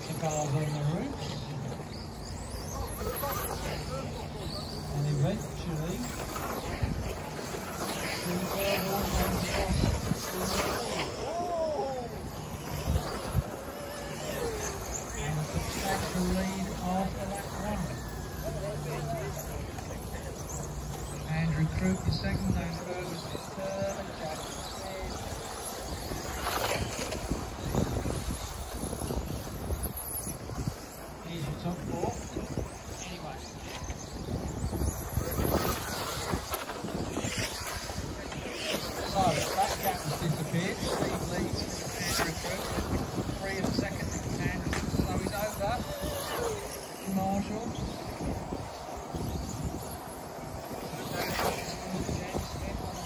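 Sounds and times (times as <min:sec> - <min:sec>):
rc car motors whining: 0:00.0 - 0:53.0
wind noise on microphone: 0:00.0 - 0:53.0.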